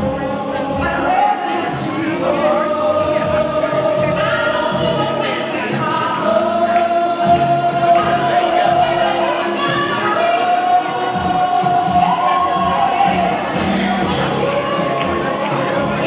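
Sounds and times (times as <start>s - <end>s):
gospel choir singing held notes: 0.0s - 16.0s.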